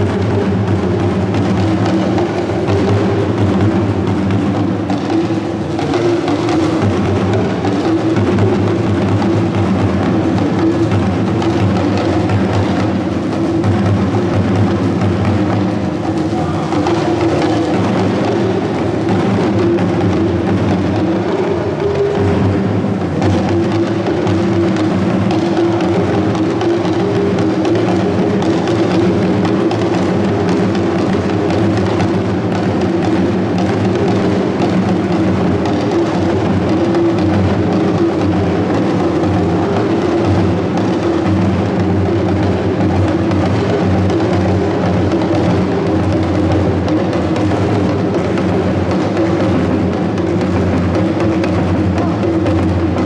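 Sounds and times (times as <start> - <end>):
barrel drum beaten with sticks: 0.0 - 53.0
talking drums: 0.0 - 53.0.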